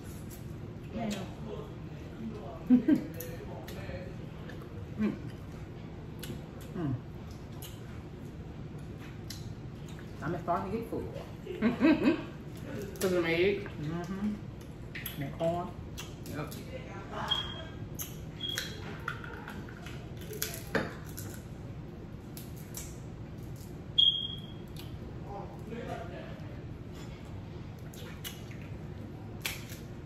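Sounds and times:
crab shells cracking: 19.4s - 21.5s, 29.4s - 29.9s.

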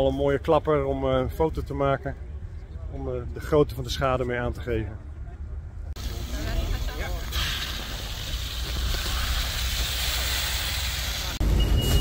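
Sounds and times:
fire hose jetting water: 6.0s - 11.4s.

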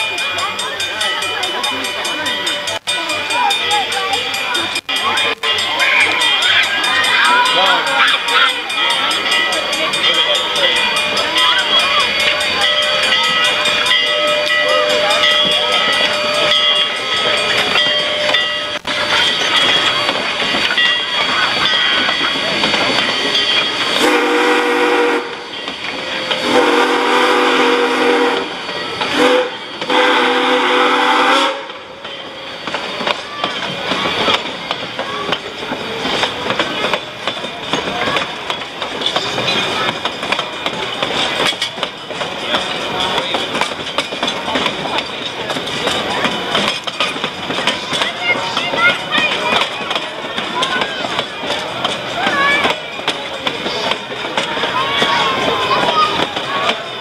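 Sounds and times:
train wheels clattering on rails: 0.0s - 57.0s
steam locomotive whistle: 24.0s - 25.5s, 26.1s - 31.9s.

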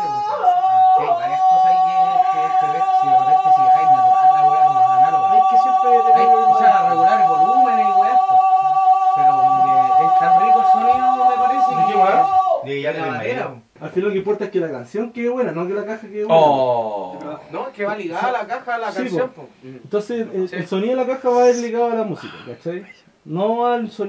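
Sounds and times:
men talking: 0.0s - 8.5s, 9.1s - 24.0s
man singing high note: 0.0s - 12.7s.

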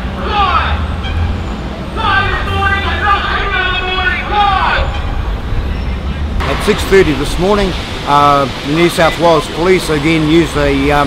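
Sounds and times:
city buses engine rumble: 0.0s - 11.0s.

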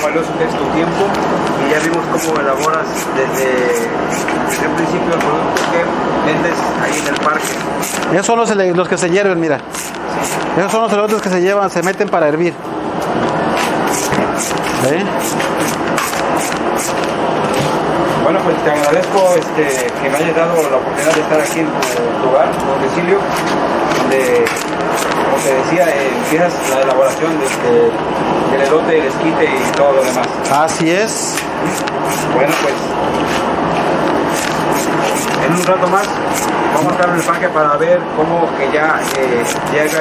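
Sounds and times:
steady noisy background: 0.0s - 40.0s
knife scraping corn cob: 1.8s - 4.8s, 6.8s - 8.1s, 9.7s - 12.0s, 13.6s - 17.0s, 18.7s - 22.0s, 23.4s - 27.7s, 29.5s - 32.8s, 34.2s - 37.4s, 39.0s - 40.0s
knife slicing corn kernels: 24.1s - 27.6s, 29.6s - 30.6s, 34.3s - 37.4s, 39.0s - 40.0s.

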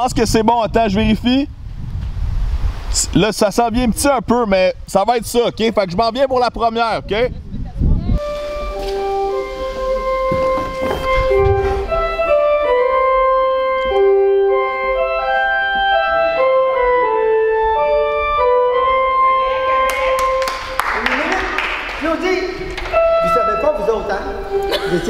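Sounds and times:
slow keyboard melody: 8.2s - 20.8s, 22.6s - 25.0s.

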